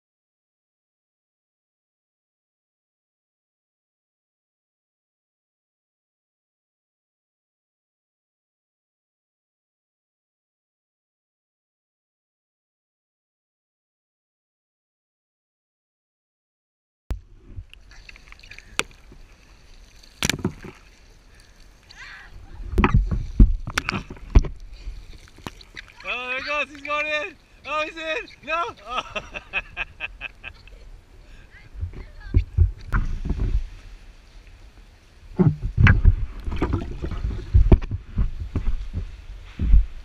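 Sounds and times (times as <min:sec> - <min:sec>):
paddle splashing water: 0:17.2 - 0:40.0
water sloshing around paddleboards: 0:17.2 - 0:40.0.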